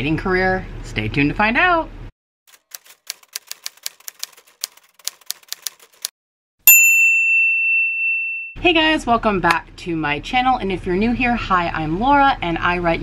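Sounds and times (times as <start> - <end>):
typewriter key strikes: 2.5 - 6.1
typewriter bell ding: 6.7 - 8.6.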